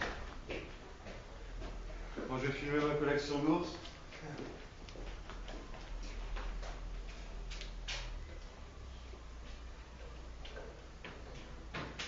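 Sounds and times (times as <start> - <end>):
footsteps on concrete floor: 0.0 - 3.0, 3.6 - 8.3
steady low hum: 0.0 - 12.0.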